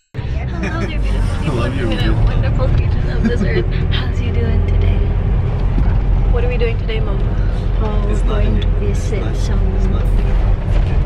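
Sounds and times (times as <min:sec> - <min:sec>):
bus engine low rumble: 0:00.0 - 0:11.0
people talking: 0:00.2 - 0:05.2, 0:05.8 - 0:11.0.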